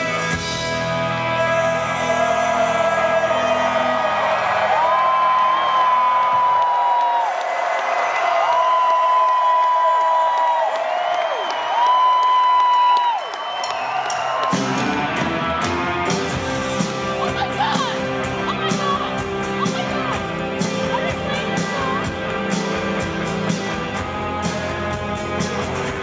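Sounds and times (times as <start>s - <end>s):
live rock band playing: 0.0s - 4.7s, 14.1s - 26.0s
crowd whooping and cheering: 1.0s - 22.0s.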